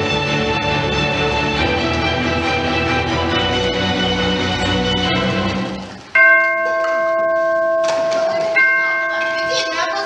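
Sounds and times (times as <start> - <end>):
music: 0.0 - 6.1
deep clock bell striking: 6.1 - 10.0.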